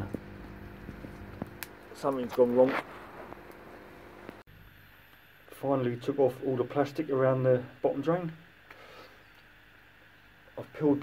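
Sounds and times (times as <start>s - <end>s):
small fire crackling: 0.0s - 11.0s
steady hiss: 0.0s - 11.0s.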